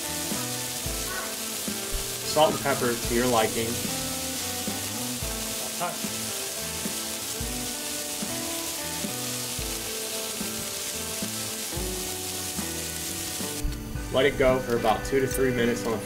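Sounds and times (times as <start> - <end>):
background music with bass: 0.0 - 16.0
meat patties sizzling on griddle: 0.0 - 16.0.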